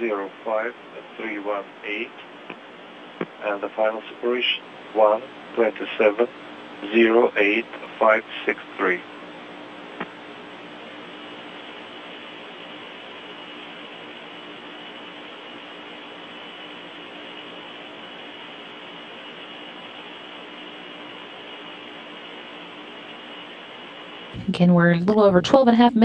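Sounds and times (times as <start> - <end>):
radio channel hiss: 0.0 - 24.4
low hum: 0.0 - 26.0.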